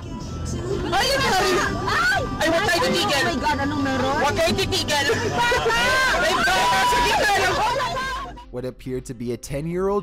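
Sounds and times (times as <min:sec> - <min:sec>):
people shouting over one another: 0:05.3 - 0:08.4.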